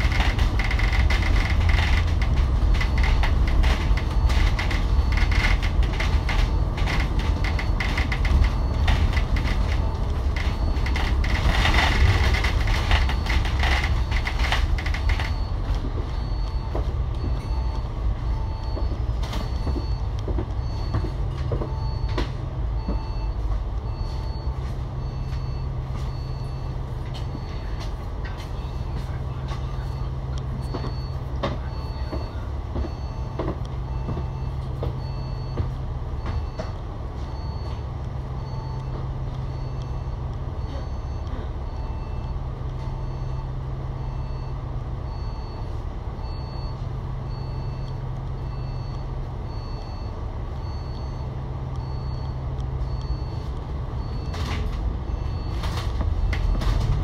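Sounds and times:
bus diesel engine idling: 0.0 - 57.0
short electronic beeps: 22.8 - 35.6, 36.2 - 55.7.

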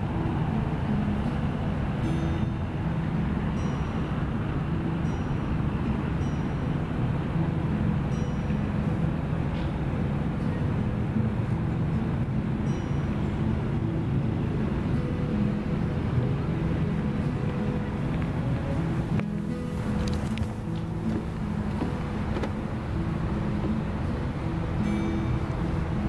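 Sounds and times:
road traffic rumble: 0.0 - 26.0.

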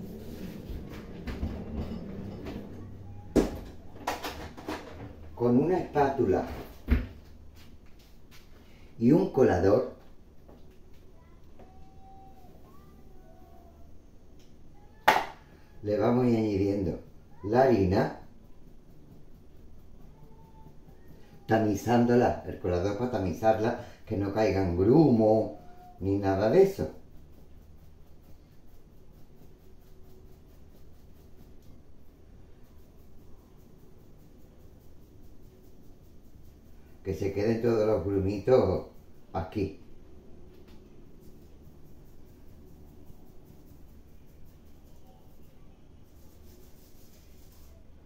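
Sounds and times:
flour sifting through a strainer: 0.0 - 1.1, 15.5 - 39.6, 41.0 - 48.0
low steady hum: 0.0 - 48.0.

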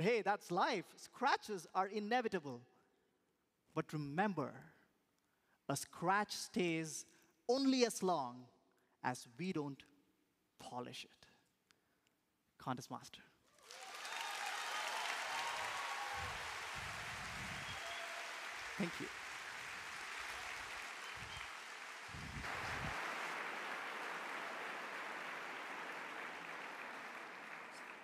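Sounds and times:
audience applauding: 13.6 - 28.0
audience cheering: 13.6 - 28.0.

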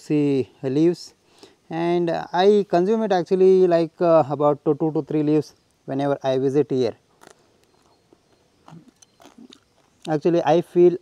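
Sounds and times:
biting and chewing juicy leaf: 7.1 - 10.2
short crunches: 7.1 - 10.2.

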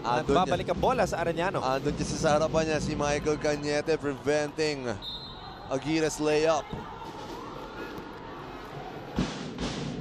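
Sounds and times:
arena crowd noise: 0.0 - 10.0
drumming from the stands: 0.5 - 3.2, 9.2 - 10.0
loud drum beats: 9.2 - 10.0.

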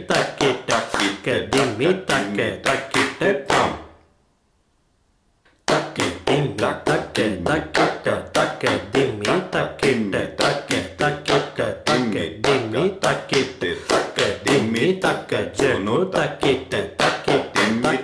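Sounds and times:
hand claps: 0.1 - 2.3, 2.9 - 3.7, 5.6 - 15.0, 16.4 - 17.9.

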